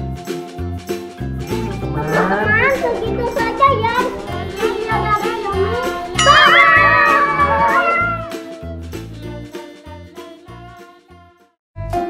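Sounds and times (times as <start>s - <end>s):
children calling out: 1.6s - 8.4s.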